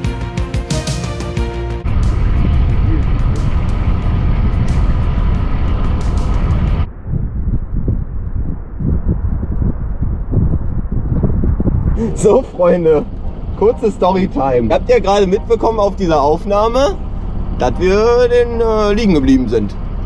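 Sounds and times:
background music: 0:00.0 - 0:06.8, 0:12.0 - 0:17.9
motorboat running: 0:01.8 - 0:06.9, 0:11.8 - 0:20.0
wind buffeting microphone: 0:01.8 - 0:20.0.

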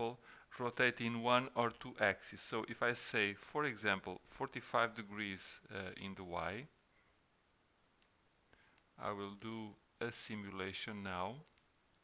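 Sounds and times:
faint mouse clicks: 0:08.0 - 0:09.0, 0:11.4 - 0:12.0.

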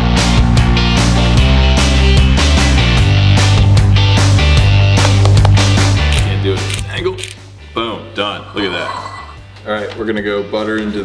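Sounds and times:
music with heavy bass line: 0:00.0 - 0:06.4.

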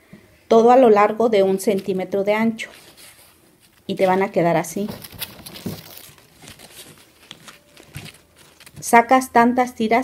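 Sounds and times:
foam sheets rustling and crinkling: 0:01.5 - 0:09.2.

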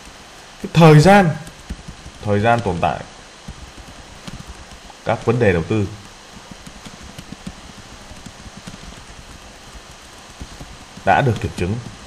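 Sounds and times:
steady background hiss: 0:00.0 - 0:12.0
typing on computer keyboard: 0:01.4 - 0:02.8, 0:03.5 - 0:12.0.

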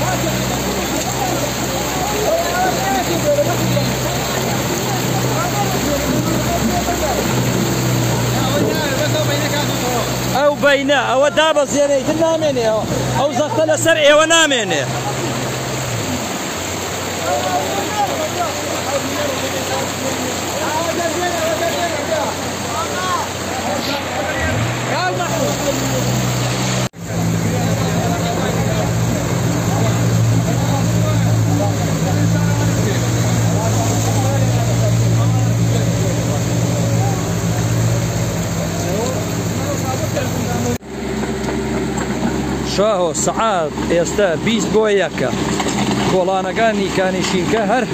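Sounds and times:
voices in background: 0:00.0 - 0:40.8
floodwater rushing: 0:00.0 - 0:47.9
front loader engine humming: 0:00.0 - 0:47.9
water running through street: 0:00.0 - 0:47.9.

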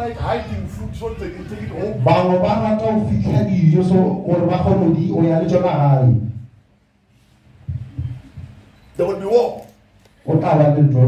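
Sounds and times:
low dull thumps: 0:07.6 - 0:08.8.

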